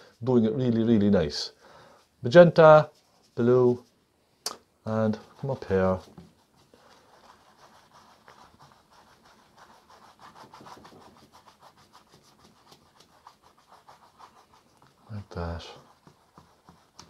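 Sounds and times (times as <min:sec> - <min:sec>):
paintbrush stroking on canvas: 0:00.0 - 0:04.2, 0:04.9 - 0:17.0.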